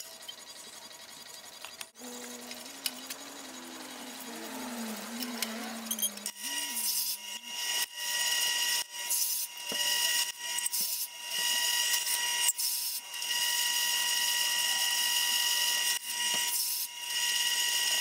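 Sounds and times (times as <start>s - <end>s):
lathe whine with cutting hiss: 1.9s - 18.0s.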